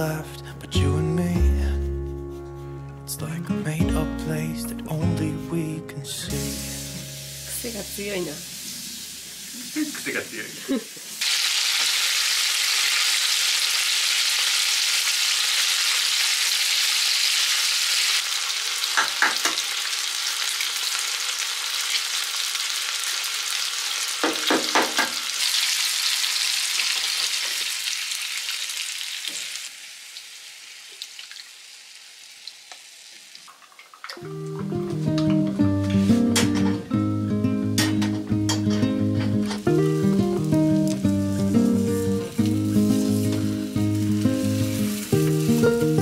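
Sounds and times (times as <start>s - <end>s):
guitar music: 0.0s - 8.4s, 34.2s - 46.0s
food sizzling in a pan: 6.3s - 34.4s, 37.7s - 46.0s.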